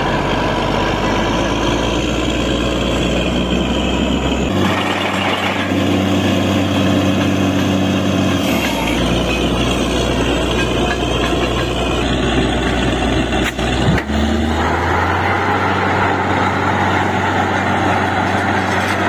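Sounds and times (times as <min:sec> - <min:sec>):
diesel engine running hard: 0:00.0 - 0:19.0.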